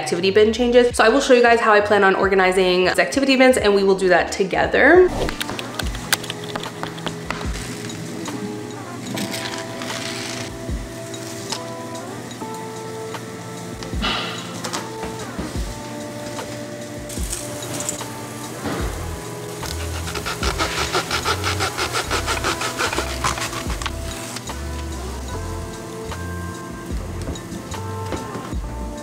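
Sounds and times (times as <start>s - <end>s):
background music: 0.0s - 29.0s
hacksaw cutting plastic: 19.6s - 24.3s.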